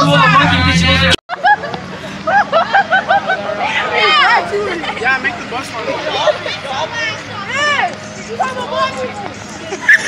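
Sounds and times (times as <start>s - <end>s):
bus engine hum: 0.0s - 10.0s
group yelling outdoors: 2.2s - 10.0s
teenagers' voices and shouting: 2.4s - 10.0s.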